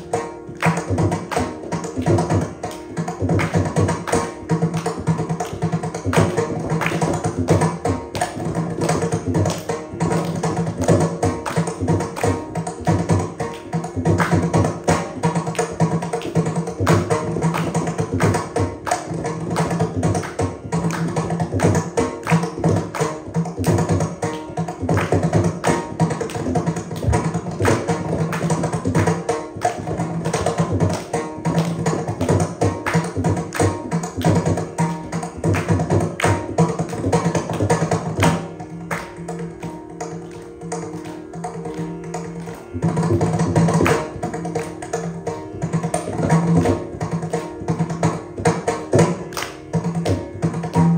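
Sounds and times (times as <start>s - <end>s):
hand drum solo: 0.0s - 50.9s.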